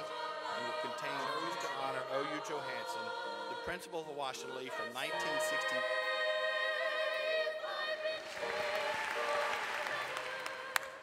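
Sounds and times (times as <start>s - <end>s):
audience applauding: 8.1s - 11.0s.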